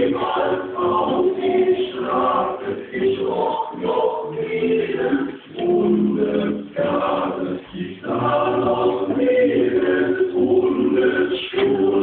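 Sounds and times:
young men singing together: 0.0 - 12.0.

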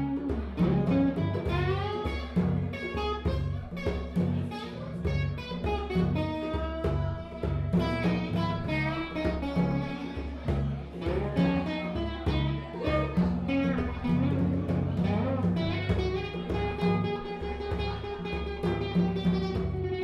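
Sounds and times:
low bass notes: 0.0 - 20.0.

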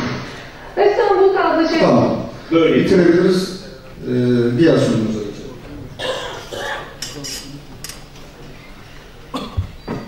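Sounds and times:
person coughing: 6.0 - 7.0, 9.3 - 10.0.

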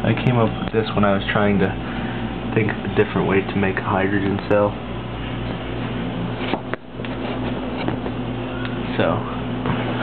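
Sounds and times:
electrical equipment humming: 0.0 - 10.0.

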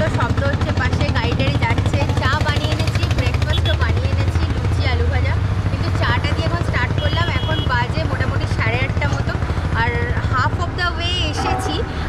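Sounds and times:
diesel road roller engine rumble: 0.0 - 12.0
woman talking: 0.0 - 12.0.

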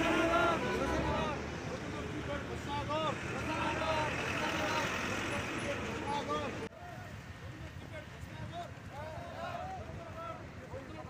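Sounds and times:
crowd shouting slogans: 0.0 - 1.6, 2.6 - 5.1, 9.0 - 10.4
street noise: 0.0 - 11.0.

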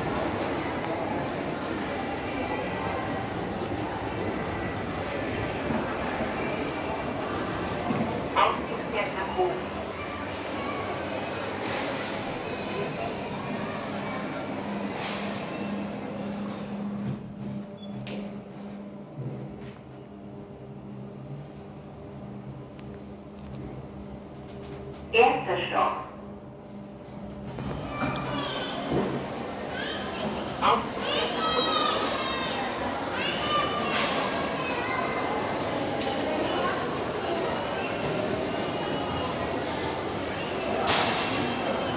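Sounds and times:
elevator low hum: 0.0 - 33.8
background chatter of people: 0.0 - 41.9.

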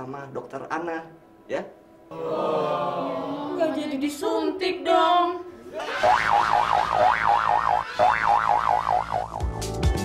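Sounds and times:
warbling comedy sound effect: 5.8 - 9.4
electronic theme music with beat: 8.9 - 10.0.

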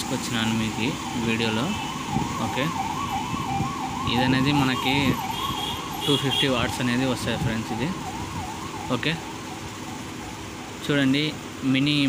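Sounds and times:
wavering siren-like tone: 0.1 - 10.8.

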